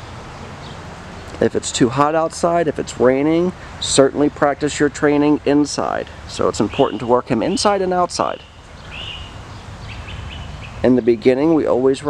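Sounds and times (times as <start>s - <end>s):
small bird chirping: 6.6s - 10.9s.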